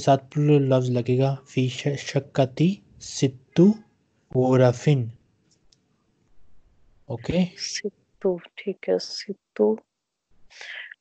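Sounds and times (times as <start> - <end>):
person speaking: 0.0 - 3.8, 4.4 - 5.1, 7.1 - 9.8.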